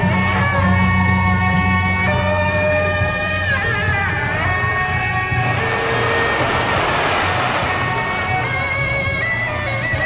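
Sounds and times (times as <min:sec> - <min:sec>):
procession band with reed horns: 0:00.0 - 0:10.0
low drone: 0:03.0 - 0:10.0
loud hissing noise: 0:05.3 - 0:09.3.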